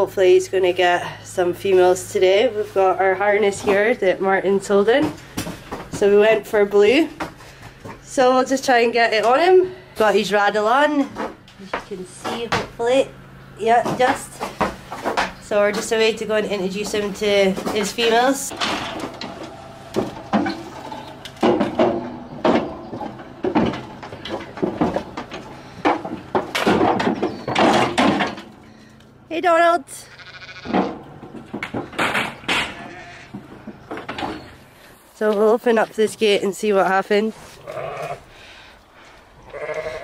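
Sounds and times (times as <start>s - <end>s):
metal trailer gates clanking: 8.0s - 29.3s, 30.4s - 34.7s
sheep bleating: 30.0s - 30.8s, 32.6s - 33.4s, 37.6s - 38.3s, 39.4s - 40.0s.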